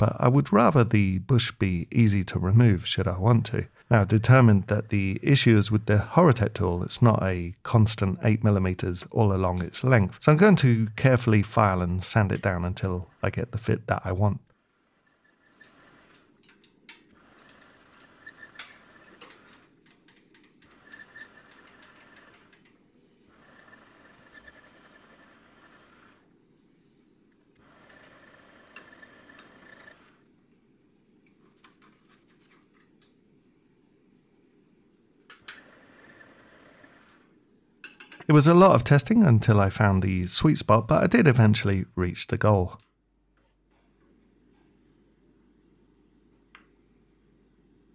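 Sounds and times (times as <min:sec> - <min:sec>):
lathe whining: 0:14.6 - 0:16.3, 0:17.2 - 0:19.7, 0:20.6 - 0:22.6, 0:23.3 - 0:26.3, 0:27.6 - 0:30.2.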